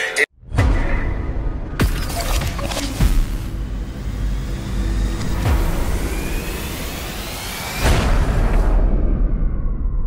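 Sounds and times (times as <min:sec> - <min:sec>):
deep rumble: 0:00.4 - 0:10.0
rising whoosh: 0:03.6 - 0:10.0.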